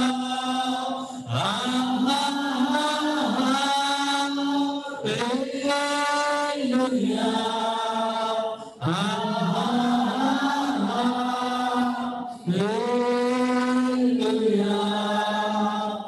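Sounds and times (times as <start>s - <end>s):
worship singers through microphones: 0.0s - 16.0s.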